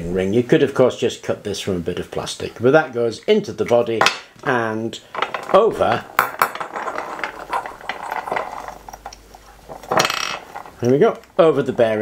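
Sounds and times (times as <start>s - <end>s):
wire rustling: 5.0s - 11.0s.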